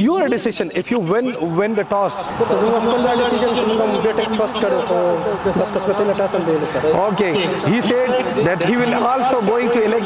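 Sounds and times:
man speaking into microphone: 0:00.0 - 0:10.0.

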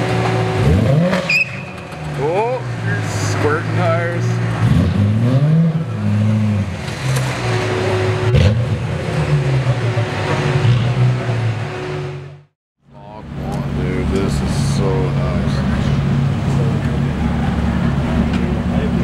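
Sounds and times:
car engine revving: 0:00.0 - 0:12.5.

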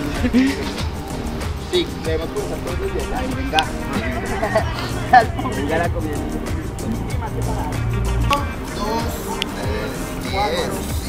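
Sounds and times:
background music with bass line: 0:00.0 - 0:11.0
people's voices: 0:00.0 - 0:11.0.

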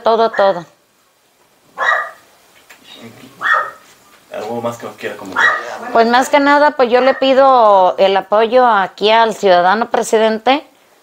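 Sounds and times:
dog barking: 0:00.3 - 0:00.6, 0:01.8 - 0:02.3, 0:03.4 - 0:03.9, 0:05.3 - 0:05.8.

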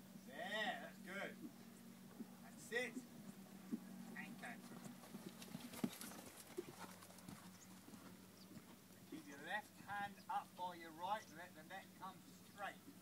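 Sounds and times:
steady low hum: 0:00.0 - 0:13.0
horse hoofbeats: 0:01.4 - 0:08.9.

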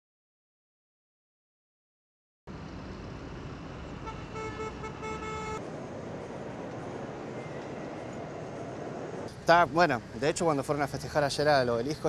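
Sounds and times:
road traffic: 0:02.5 - 0:12.0
vehicle horn honking: 0:04.0 - 0:05.6.

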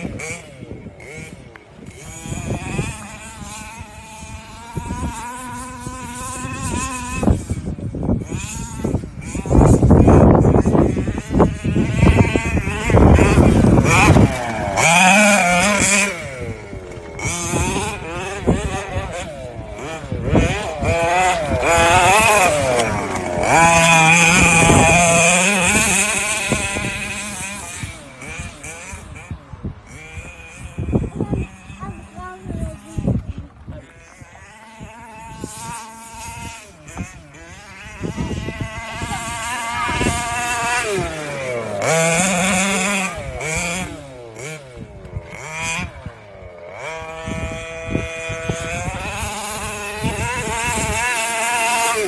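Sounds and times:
two-stroke engine revving: 0:00.0 - 0:52.0.

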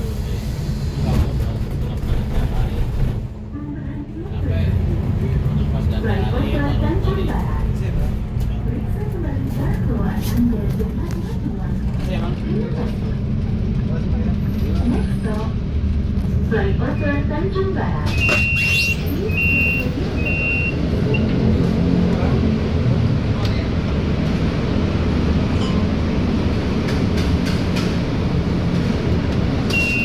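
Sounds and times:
bus engine and road rumble: 0:00.0 - 0:30.0
passengers talking: 0:00.0 - 0:30.0
door chime double beeps: 0:29.7 - 0:30.0.

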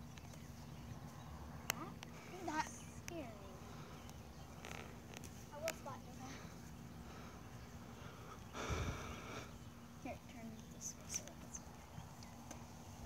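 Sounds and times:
outdoor background noise: 0:00.0 - 0:13.0
faint wordless voices: 0:01.0 - 0:13.0.

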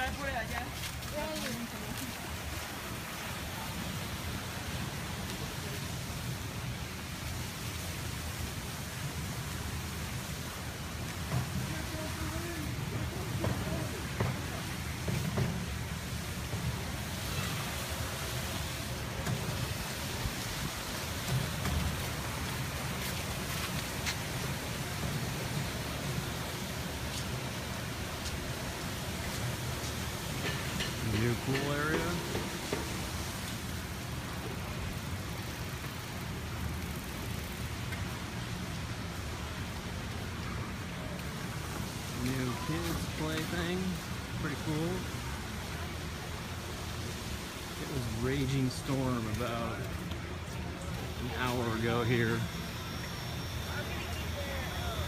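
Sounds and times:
faint voices of people: 0:49.7 - 0:55.0.

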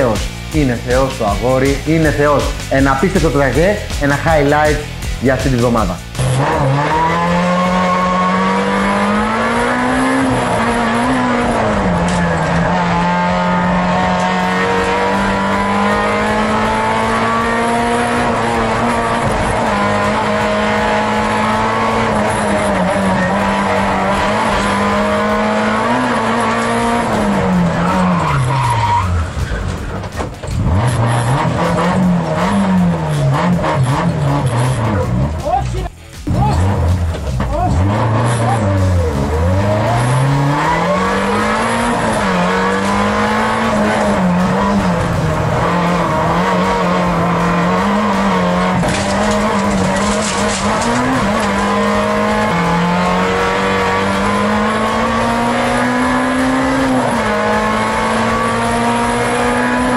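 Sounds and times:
car engine revving: 0:00.0 - 0:59.9.

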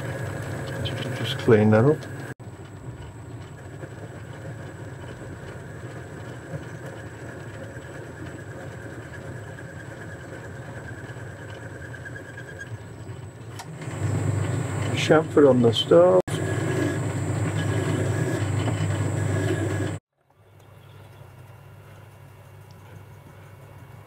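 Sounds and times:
lathe machine hum: 0:00.0 - 0:20.0
thin whine of cutting tool: 0:13.6 - 0:20.0.

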